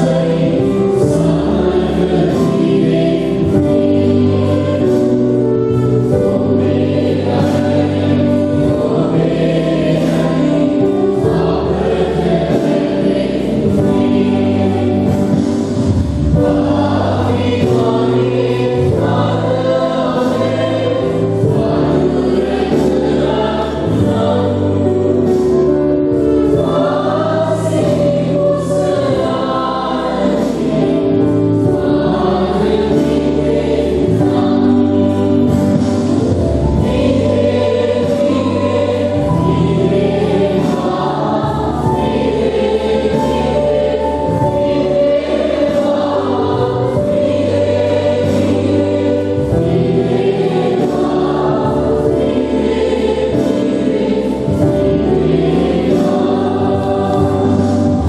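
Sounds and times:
choir singing a hymn: 0.0 - 58.0
sustained instrumental bass line: 0.0 - 58.0.

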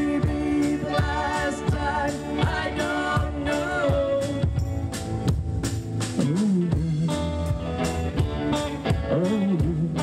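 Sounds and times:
drum kit beat: 0.0 - 10.0
electric guitars: 0.0 - 10.0.

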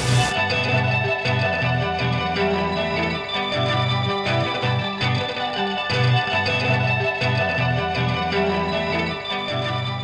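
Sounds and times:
electric guitar with effects: 0.0 - 10.0.

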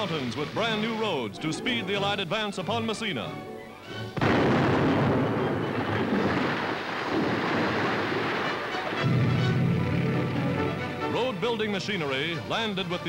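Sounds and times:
rock-blasting explosion: 4.2 - 11.2
long rumbling noise: 9.0 - 11.2
low steady drone: 9.0 - 11.2.

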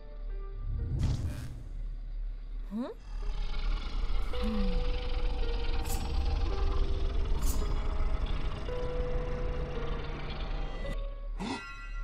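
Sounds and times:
background music held notes: 0.0 - 2.5, 3.3 - 12.0
low electrical drone: 0.0 - 11.4.

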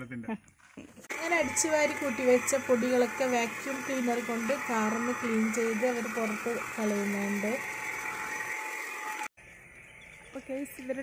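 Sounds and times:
handheld vacuum cleaner running: 1.1 - 9.4.

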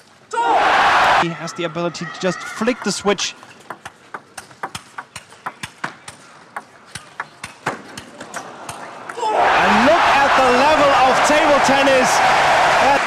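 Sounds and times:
crowd cheering and shouting: 0.3 - 3.2, 8.3 - 13.0
table tennis ball clicking: 2.7 - 8.8.

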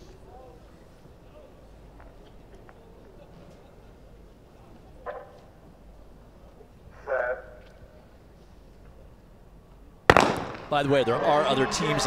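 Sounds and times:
low stadium hum: 0.0 - 12.0.

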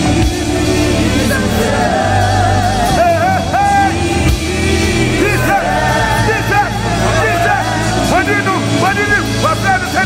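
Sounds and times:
gospel band sustained chords: 0.0 - 10.0.

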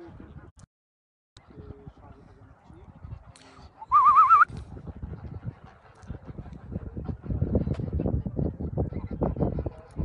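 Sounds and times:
loud warbling whistle: 3.9 - 4.5.

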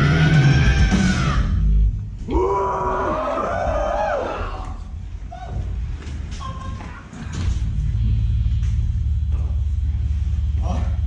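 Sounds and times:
audience yelling and cheering: 2.3 - 5.6.

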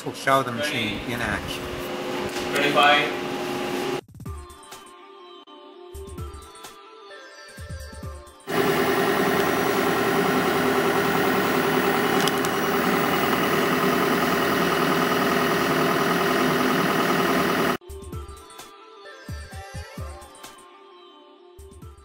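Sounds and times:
laboratory machinery droning: 0.6 - 4.0, 8.5 - 17.8.

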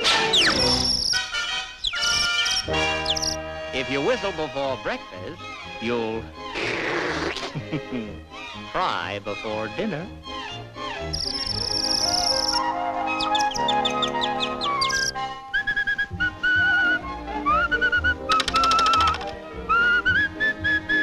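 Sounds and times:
whistled tune: 0.0 - 4.3, 11.0 - 21.0
orchestral cartoon music: 0.0 - 21.0.

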